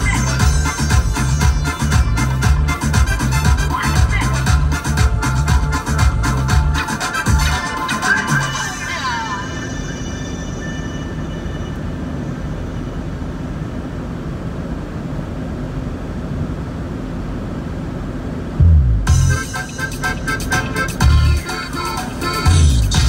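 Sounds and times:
music with heavy bass: 0:00.0 - 0:09.4, 0:18.6 - 0:23.0
car road rumble: 0:18.4 - 0:19.4.

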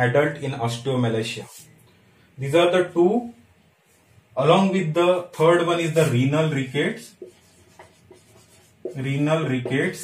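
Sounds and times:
marker writing on whiteboard: 0:05.7 - 0:10.0.

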